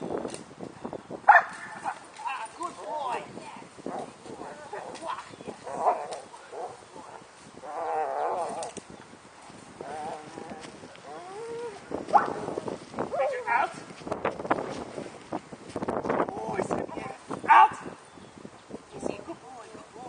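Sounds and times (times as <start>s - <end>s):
dog barking: 1.3s - 1.7s, 17.5s - 17.8s.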